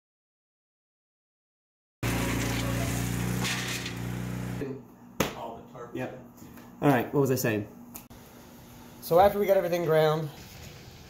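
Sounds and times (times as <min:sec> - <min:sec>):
diesel engine running: 0:02.0 - 0:04.6.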